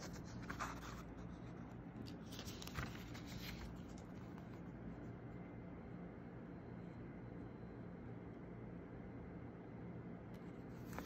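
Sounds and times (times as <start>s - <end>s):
paper pages rustling: 0.0s - 4.7s, 10.7s - 11.0s.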